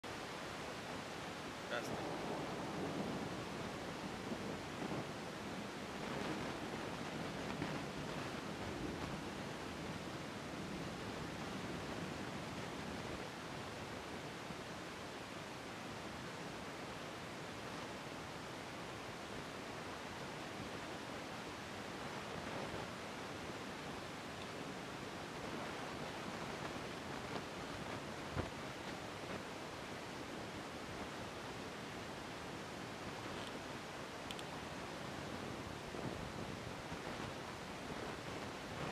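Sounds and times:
rain on wet street: 0.1s - 38.9s.

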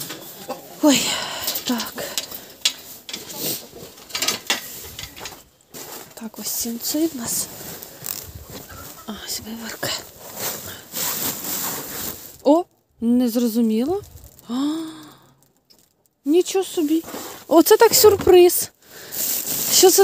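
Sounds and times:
hay and sacking rustling: 2.8s - 12.6s, 16.8s - 20.0s.

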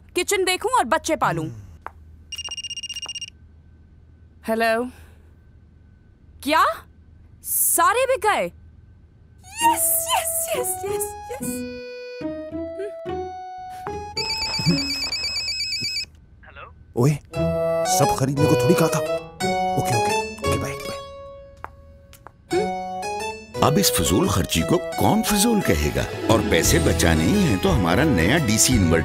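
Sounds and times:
mobile phone ringing: 2.3s - 3.4s, 14.1s - 16.1s.

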